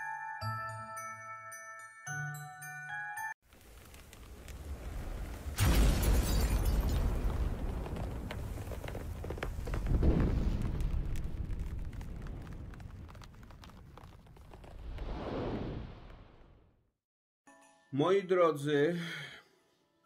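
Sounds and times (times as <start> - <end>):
deep rumbling boom: 9.6 - 16.3.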